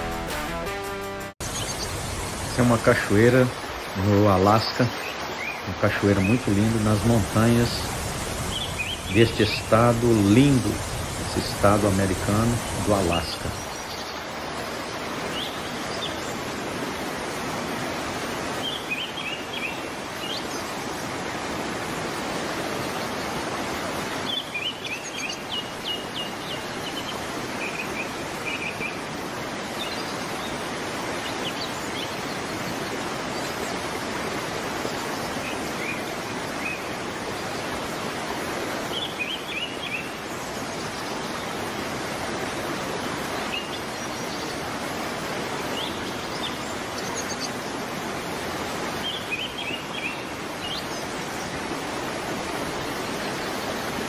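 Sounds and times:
waterfall rushing: 0.0s - 54.0s
small birds chirping: 1.4s - 16.5s, 18.5s - 21.3s, 24.1s - 38.1s, 38.8s - 41.6s, 43.2s - 47.9s, 48.8s - 54.0s.

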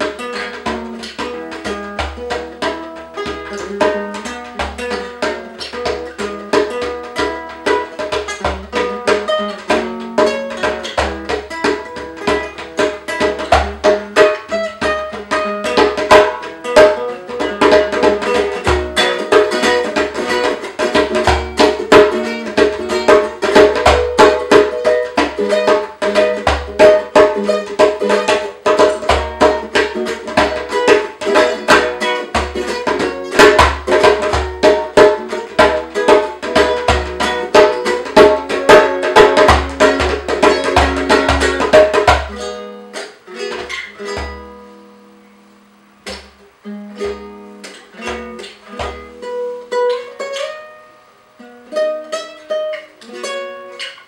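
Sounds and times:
hand drum played with palms: 0.0s - 50.9s
guitalele strummed and picked: 0.0s - 54.0s.

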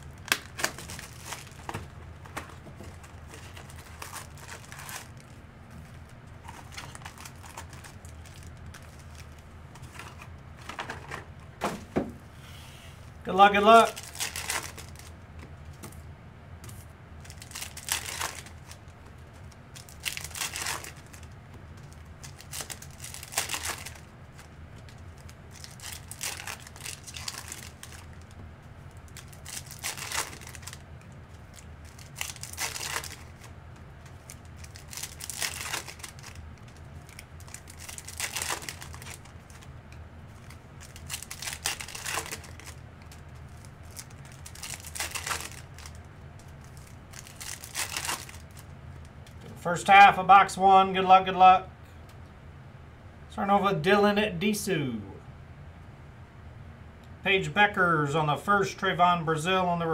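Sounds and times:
card pack wrappers crinkling: 0.0s - 11.2s, 13.4s - 16.0s, 17.2s - 49.4s
low steady hum: 0.0s - 59.9s.

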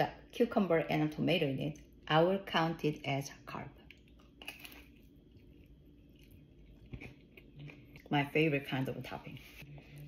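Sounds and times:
person chewing a sandwich: 3.9s - 8.1s.

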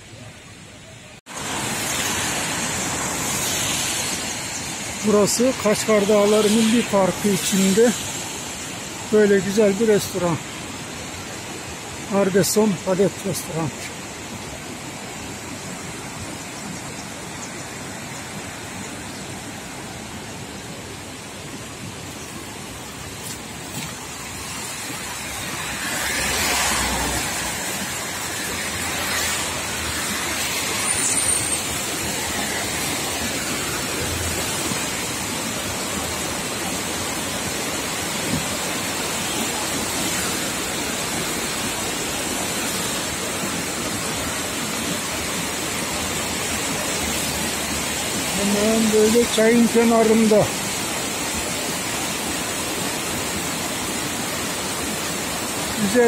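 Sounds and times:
river rushing over rocks: 0.0s - 56.0s.

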